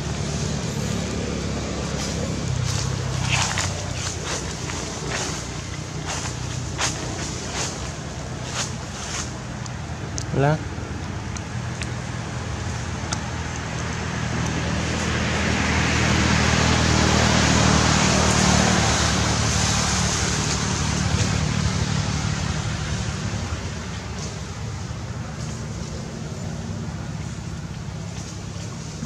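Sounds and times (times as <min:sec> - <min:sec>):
motor vehicle passing: 0:00.0 - 0:29.0
steady low hum: 0:00.0 - 0:29.0.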